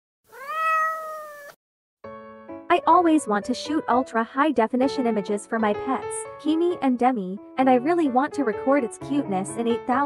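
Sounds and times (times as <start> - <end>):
kitten meowing: 0.3 - 1.6.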